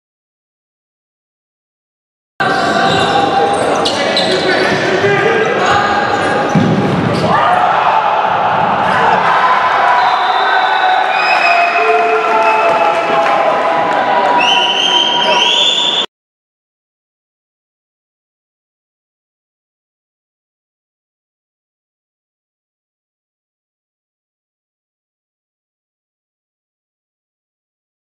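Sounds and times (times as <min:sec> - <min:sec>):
players shouting in a hall: 0:02.4 - 0:16.1
shoe squeaks: 0:02.5 - 0:04.8.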